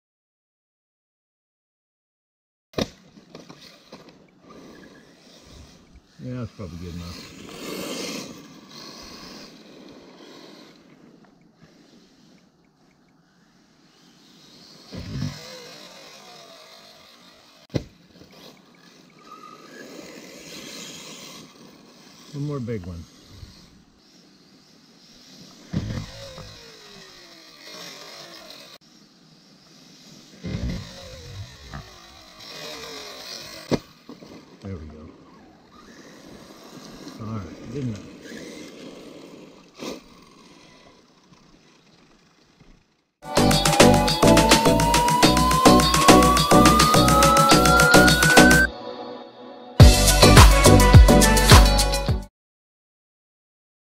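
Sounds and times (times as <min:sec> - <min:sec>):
rc car motor driving on gravel: 0:02.8 - 0:48.7.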